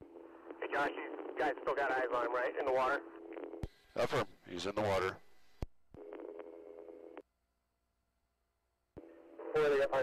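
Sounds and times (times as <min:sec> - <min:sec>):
droning radio hum: 0:00.0 - 0:07.2, 0:09.0 - 0:10.0.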